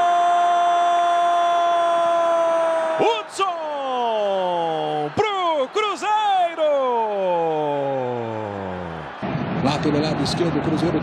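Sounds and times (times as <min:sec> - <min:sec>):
man shouting goal: 0:00.0 - 0:09.2.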